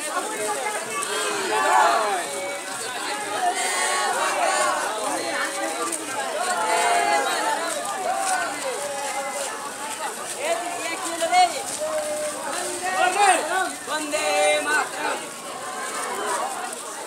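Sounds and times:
children talking and calling out: 0.0 - 17.0.

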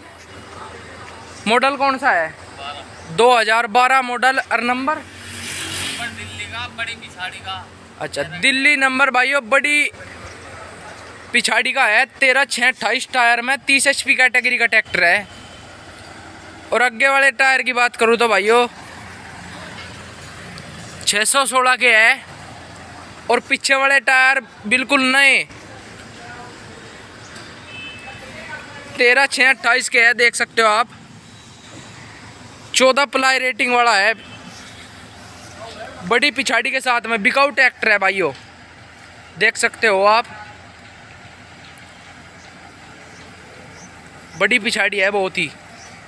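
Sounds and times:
outdoor background noise: 0.0 - 46.0.

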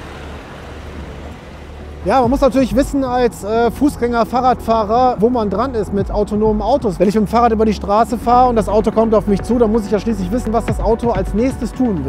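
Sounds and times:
low rumble of passing vehicles: 0.0 - 12.0.

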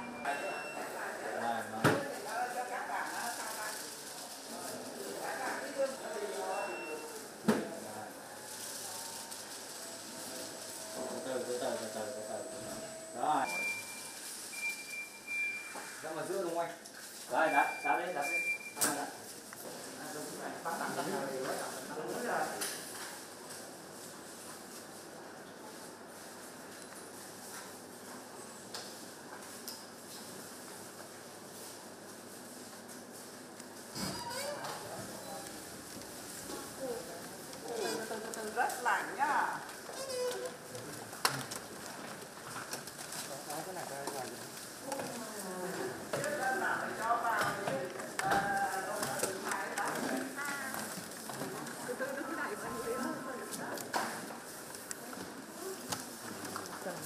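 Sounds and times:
forklift electronic warning tone: 10.0 - 15.7.

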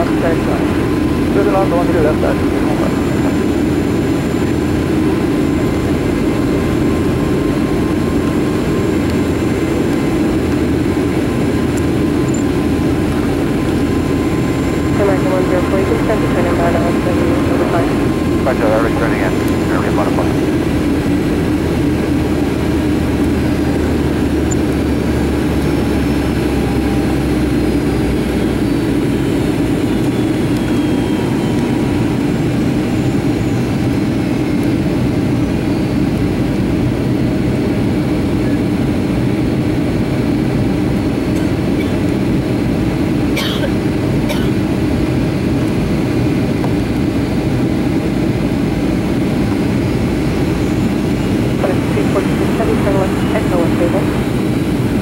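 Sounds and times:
jet engine hum and airflow: 0.0 - 55.0.

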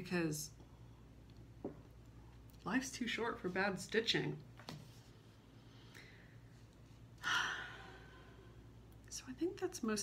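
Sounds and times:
faint low hum: 0.0 - 10.0
woman sighing: 7.2 - 8.6.

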